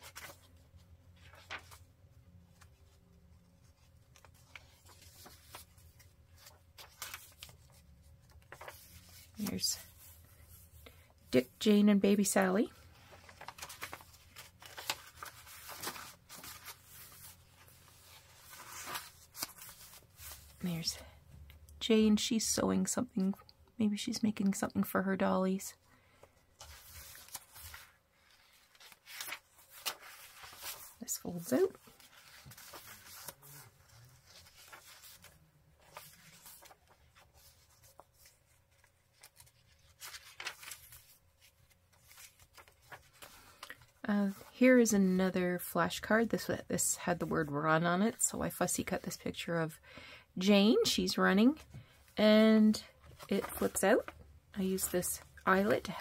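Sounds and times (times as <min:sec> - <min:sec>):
paper pages rustling: 0:00.0 - 0:10.8, 0:12.8 - 0:21.1, 0:26.1 - 0:44.5, 0:52.8 - 0:54.2.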